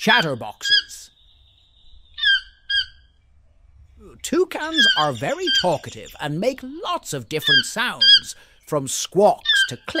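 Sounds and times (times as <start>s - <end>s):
toucan squawks: 0.5s - 3.2s, 4.5s - 6.2s, 7.3s - 8.4s, 9.4s - 10.0s.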